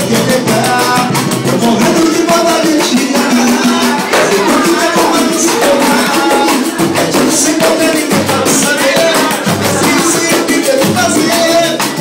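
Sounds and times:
bass drum: 0.0 - 12.0
hand percussion: 0.0 - 12.0
voices singing: 0.0 - 12.0.

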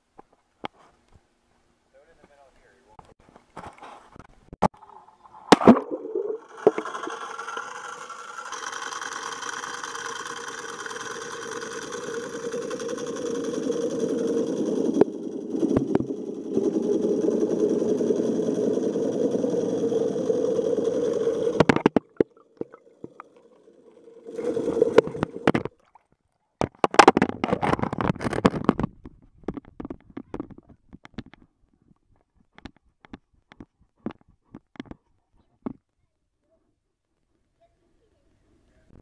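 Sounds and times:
steady underwater hum: 4.7 - 26.1.

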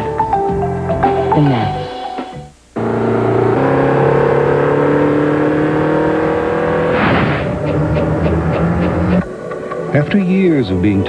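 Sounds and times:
car engine accelerating: 2.8 - 10.0.

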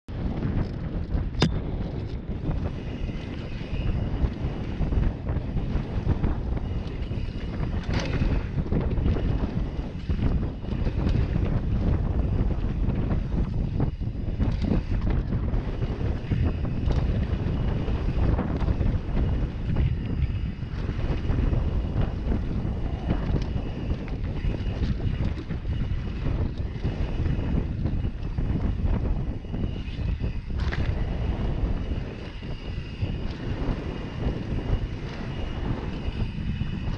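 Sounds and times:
wind buffeting microphone: 0.1 - 36.9
tyres rumbling on dirt trail: 2.3 - 36.9.

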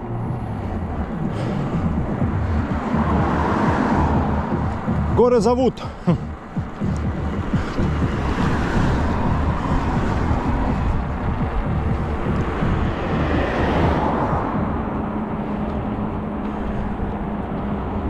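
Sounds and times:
wind on microphone: 0.0 - 5.2, 6.3 - 18.0
bicycle tyres on asphalt: 0.0 - 5.6, 6.4 - 18.0
car passing: 0.0 - 18.0.

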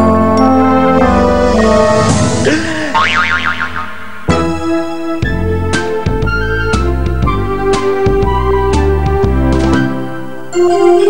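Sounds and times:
tone bending up and down: 0.8 - 6.8
high wobbling tone: 0.9 - 4.8.

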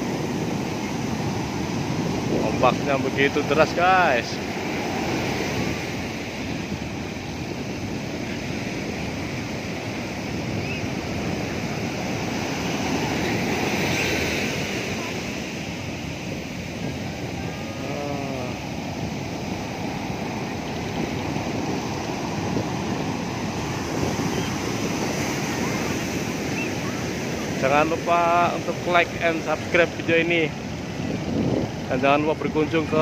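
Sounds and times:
surf breaking on a beach: 0.0 - 33.0.

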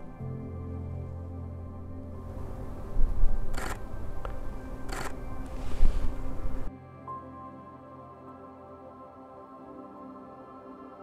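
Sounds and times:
background music: 0.0 - 11.0
camera shutter bursts: 3.5 - 3.8, 4.9 - 5.2.

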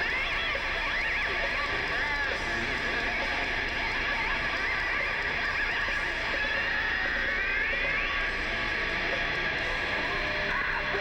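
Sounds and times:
distorted electric guitar: 0.0 - 11.0
metal band playing: 0.0 - 11.0.

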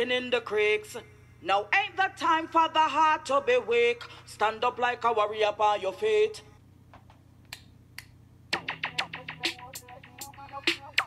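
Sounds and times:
finger snaps: 7.0 - 8.2
song beat and music: 8.5 - 11.0.

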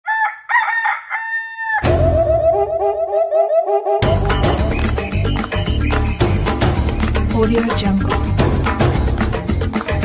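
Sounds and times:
rooster crowing: 0.0 - 2.0
intro music: 1.9 - 10.0.

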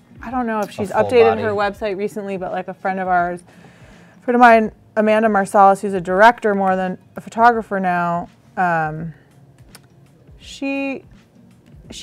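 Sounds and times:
person speaking: 0.6 - 1.7.

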